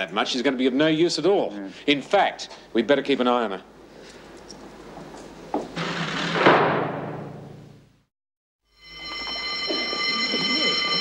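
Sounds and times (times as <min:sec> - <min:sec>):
high ringing alarm buzzer: 0:08.7 - 0:11.0.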